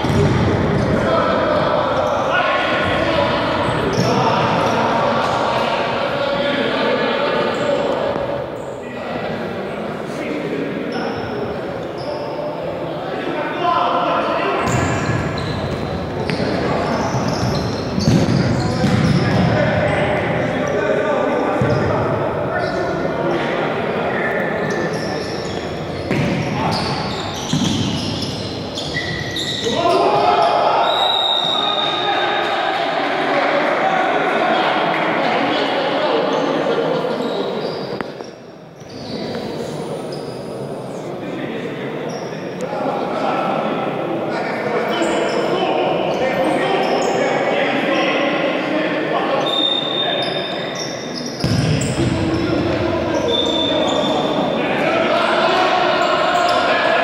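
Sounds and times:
players shouting in a gym: 0.0s - 9.7s, 10.5s - 38.0s, 44.6s - 57.0s
players calling out: 44.9s - 57.0s
shoes on court floor: 51.4s - 52.8s.

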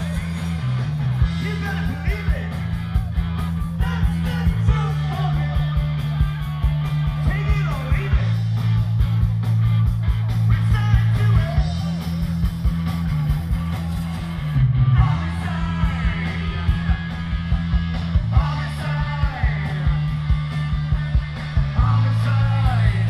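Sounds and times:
bass guitar: 0.0s - 23.0s
drums: 0.0s - 23.0s
electric guitars: 0.0s - 23.0s.

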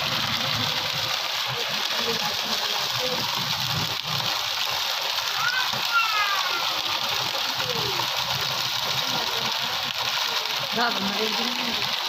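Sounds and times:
heavy rain falling: 0.0s - 12.0s.

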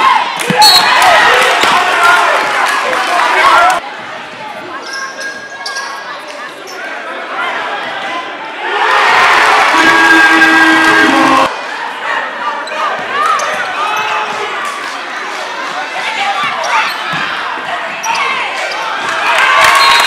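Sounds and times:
voices in stands: 0.0s - 20.0s
sneakers squeaking: 4.1s - 6.9s, 17.9s - 19.0s
crowd shouting: 7.6s - 12.4s.

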